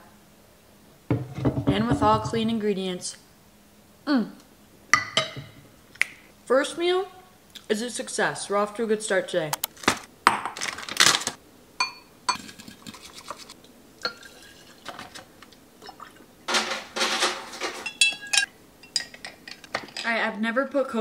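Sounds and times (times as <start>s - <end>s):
glass clinking: 5.0s - 5.6s, 11.8s - 12.5s, 14.0s - 14.6s, 16.6s - 19.6s
liquid pouring into glass jar: 14.0s - 15.0s.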